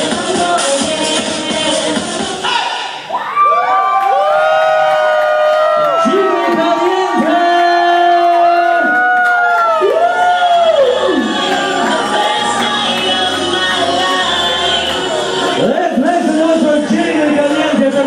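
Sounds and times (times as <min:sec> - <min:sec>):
audience cheering and screaming: 0:02.5 - 0:15.7
low music beat: 0:09.9 - 0:18.0.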